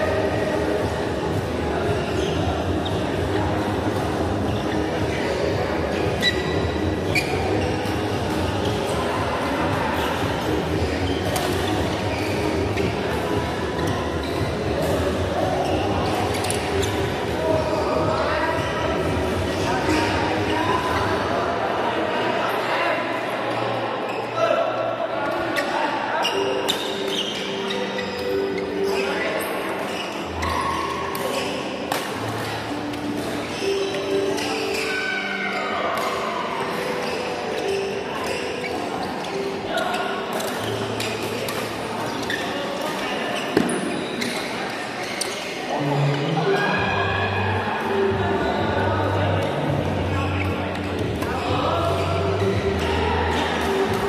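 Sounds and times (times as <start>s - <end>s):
shoes squeaking on court floor: 0.0s - 21.3s, 25.3s - 46.8s, 47.8s - 54.0s
people's voices: 0.0s - 54.0s.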